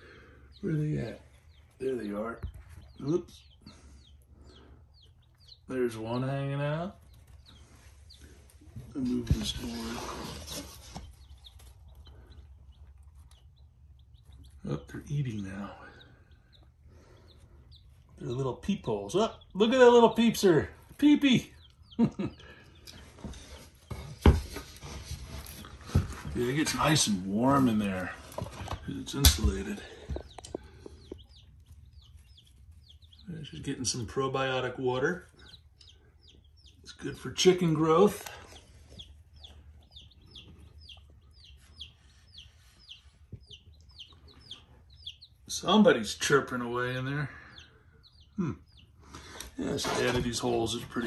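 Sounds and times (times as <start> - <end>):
chicks peeping: 0.0 - 51.0.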